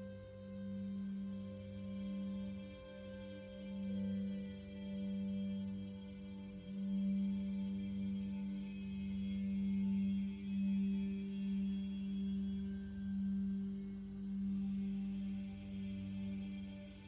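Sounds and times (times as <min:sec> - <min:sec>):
low meditation drone: 0:00.0 - 0:17.0.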